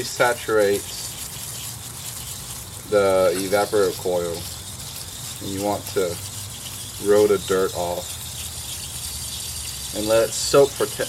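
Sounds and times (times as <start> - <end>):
hiss of pump sprayer: 0.0 - 11.0.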